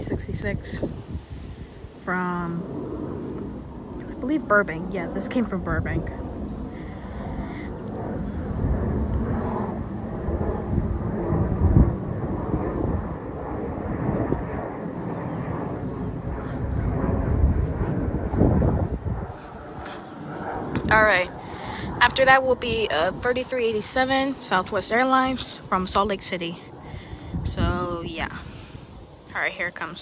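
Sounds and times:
jet airliner passing overhead: 0.0s - 30.0s.

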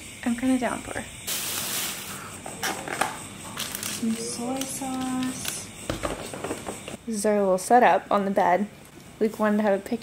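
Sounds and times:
plastic bag rustling: 1.3s - 2.3s.

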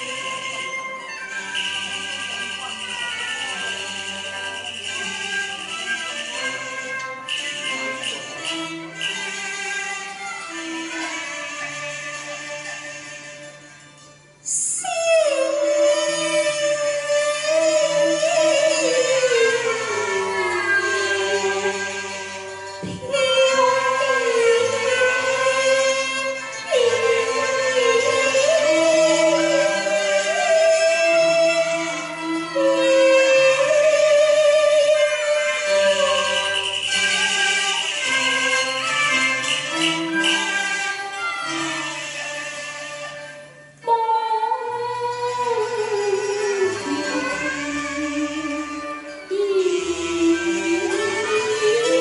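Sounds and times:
bowed strings: 0.0s - 52.0s
soft instrumental accompaniment: 0.0s - 52.0s
woman singing opera: 14.5s - 21.8s, 43.8s - 52.0s.

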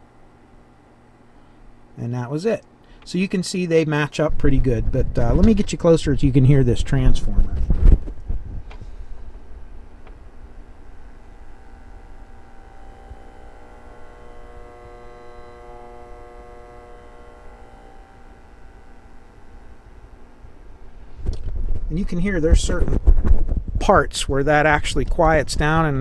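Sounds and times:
steady sine tones: 0.0s - 24.0s
power transformer humming: 0.0s - 26.0s.

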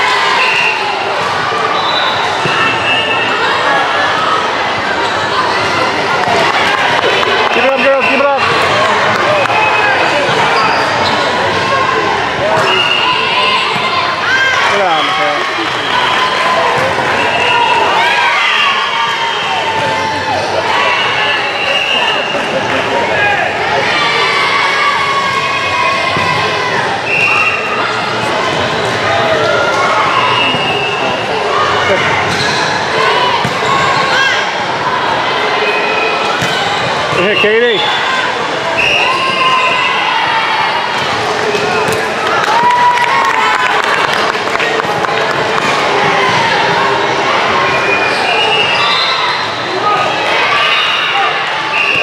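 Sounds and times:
many overlapping voices: 0.0s - 52.0s
volleyballs hit and bouncing: 31.9s - 34.1s, 36.2s - 37.4s, 40.9s - 42.8s.

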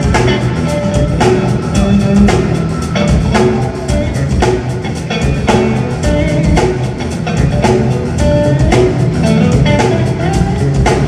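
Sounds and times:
drum kit: 0.0s - 11.0s
electric guitar bending notes: 0.0s - 11.0s.

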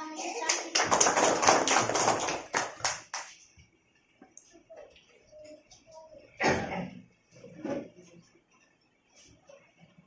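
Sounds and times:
children applauding: 0.4s - 3.3s.

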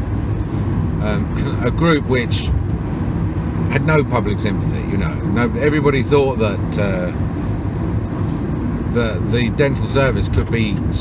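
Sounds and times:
vehicle cabin rumble: 0.0s - 11.0s.

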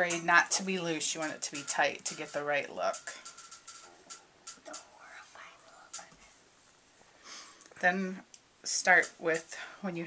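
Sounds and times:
faint whispering: 4.6s - 6.5s.

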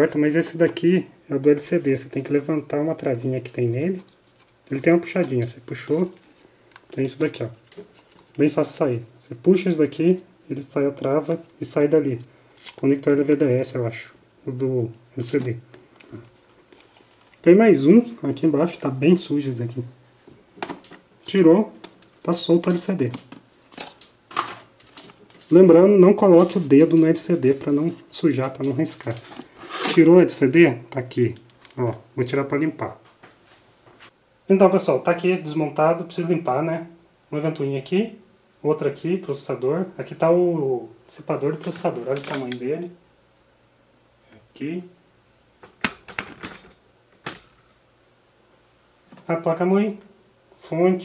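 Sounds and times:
soft rustling handling noises: 1.6s - 9.7s, 10.6s - 18.5s, 24.7s - 32.1s, 41.3s - 42.8s.

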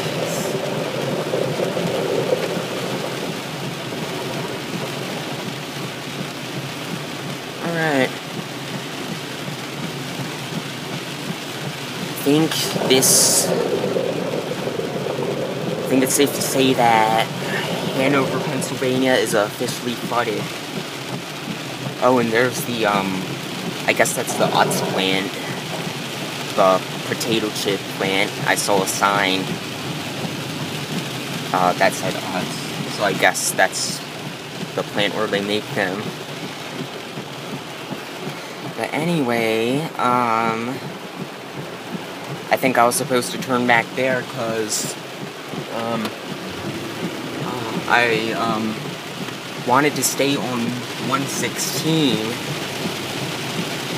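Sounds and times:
heavy rain on car roof: 0.0s - 53.9s.

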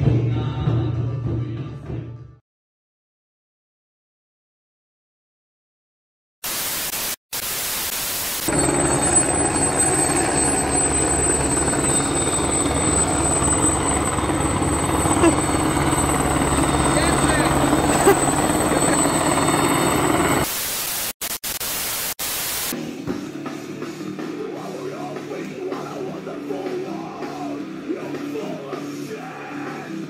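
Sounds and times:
static hiss: 6.4s - 8.5s, 20.5s - 22.8s
helicopter rotor chopping: 8.5s - 20.5s.

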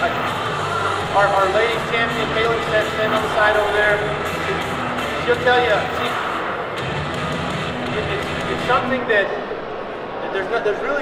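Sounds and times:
background music: 0.0s - 10.8s.

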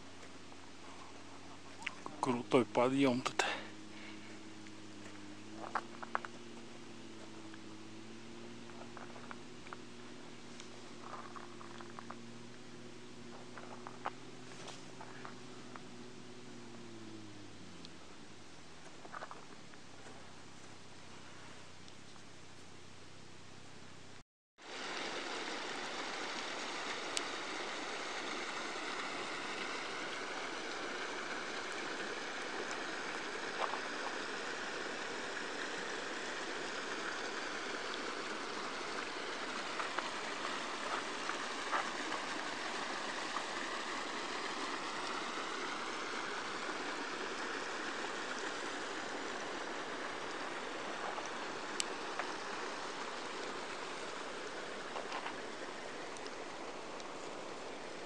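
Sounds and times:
meltwater stream rushing: 0.0s - 19.0s, 24.6s - 58.0s.

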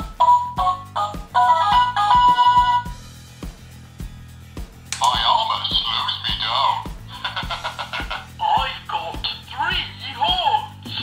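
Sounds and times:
toy playing electronic jingle: 0.0s - 3.0s.

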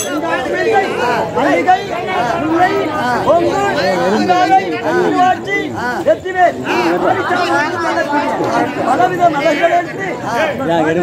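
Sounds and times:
several people talking: 0.0s - 11.0s.

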